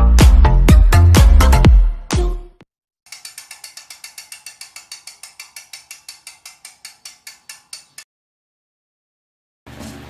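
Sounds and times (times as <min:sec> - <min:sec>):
ratchet clicking: 0:03.1 - 0:08.1.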